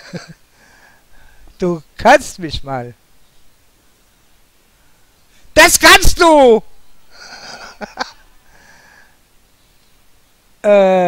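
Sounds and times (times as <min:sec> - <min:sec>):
man's wheezy exhale: 0:08.5 - 0:09.2.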